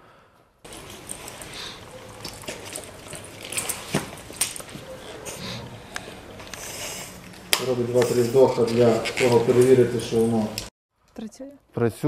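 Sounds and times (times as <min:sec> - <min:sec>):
rustling of straps and gear: 0:00.6 - 0:10.7.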